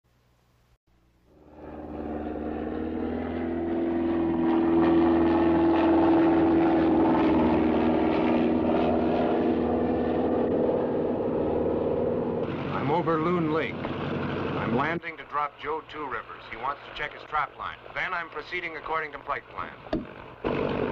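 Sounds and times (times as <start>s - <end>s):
propeller plane engine droning: 1.0s - 20.9s.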